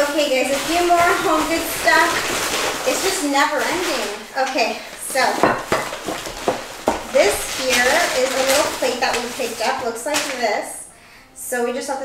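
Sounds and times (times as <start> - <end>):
packing paper crinkling: 0.0 - 10.8.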